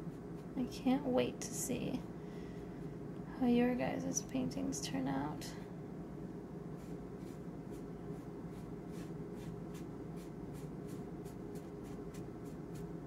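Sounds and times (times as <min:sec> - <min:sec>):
steady low hum: 0:00.0 - 0:13.0
paintbrush stroking on paper: 0:06.8 - 0:13.0.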